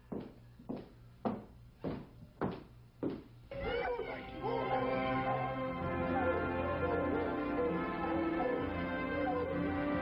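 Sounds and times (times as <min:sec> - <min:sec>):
footsteps on hollow wooden floor: 0:00.1 - 0:03.3.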